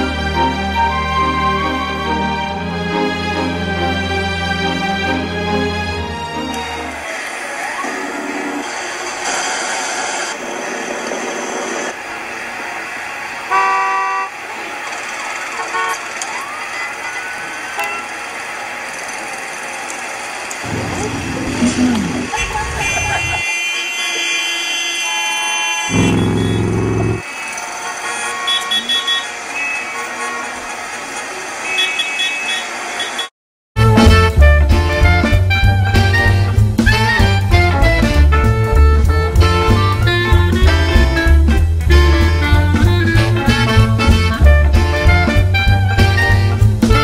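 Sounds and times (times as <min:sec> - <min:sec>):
music: 0:00.0 - 0:07.0, 0:33.8 - 0:47.0
road noise: 0:00.0 - 0:47.0
car horn honking: 0:13.5 - 0:14.4, 0:15.5 - 0:16.1, 0:22.3 - 0:30.7, 0:31.6 - 0:34.8.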